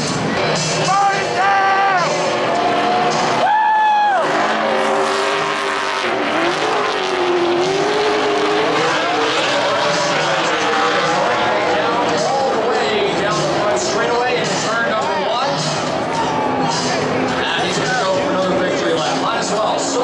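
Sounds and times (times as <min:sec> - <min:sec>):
race cars passing at high revs: 0:00.0 - 0:20.0.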